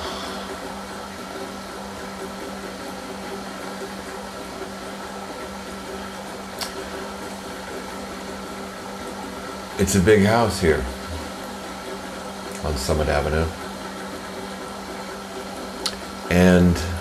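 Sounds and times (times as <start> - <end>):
circulator motor and pump humming: 0.0 - 17.0.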